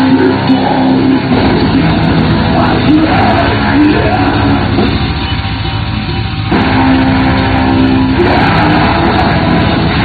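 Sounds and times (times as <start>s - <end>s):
distorted guitars: 0.0s - 10.0s
rapid dense drumming: 0.0s - 10.0s.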